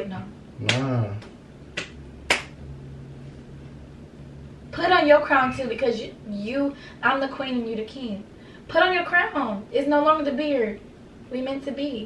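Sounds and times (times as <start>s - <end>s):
faint low hum: 0.0s - 12.0s
hand clap: 0.6s - 2.6s.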